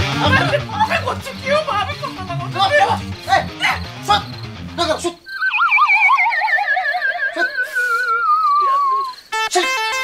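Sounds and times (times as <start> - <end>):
wobbling tone sliding downward: 5.3 - 9.1.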